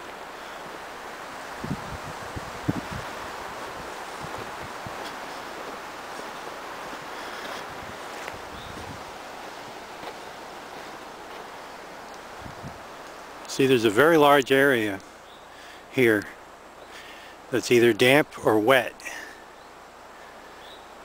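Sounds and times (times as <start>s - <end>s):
wind rushing through trees: 0.0s - 21.0s.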